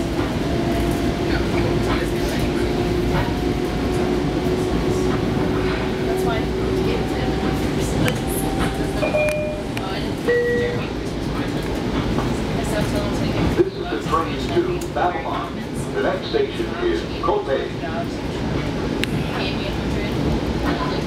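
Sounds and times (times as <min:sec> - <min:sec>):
train wheels rumbling on track: 0:00.0 - 0:21.0.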